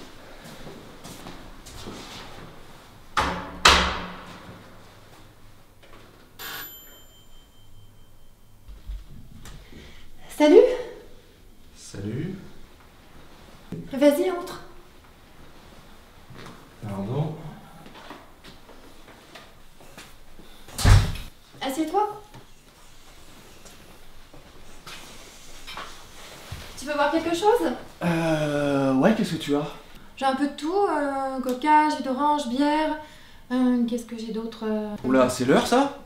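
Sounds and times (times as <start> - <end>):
door unlatching thump: 3.2 - 4.6
doorbell ringing: 6.4 - 8.8
rustles and knocks of movement: 22.3 - 28.0.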